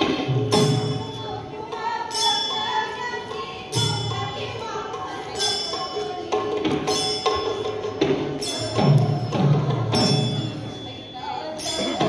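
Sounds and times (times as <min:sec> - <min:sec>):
brass hand cymbals clashing: 0:02.1 - 0:03.1, 0:05.4 - 0:12.0.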